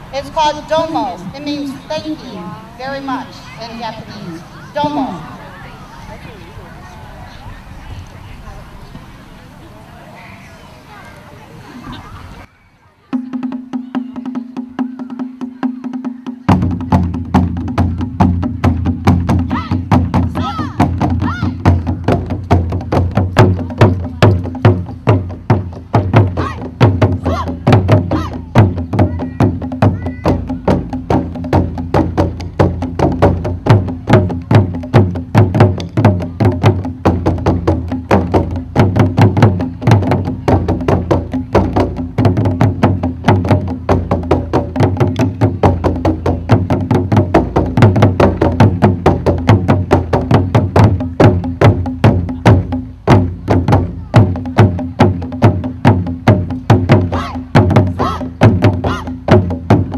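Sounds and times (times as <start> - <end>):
ensemble drumming: 13.1 - 59.9.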